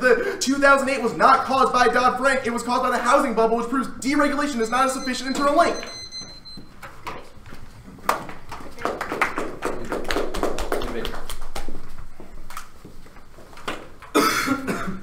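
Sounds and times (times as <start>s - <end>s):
loud cough: 14.1s - 15.0s.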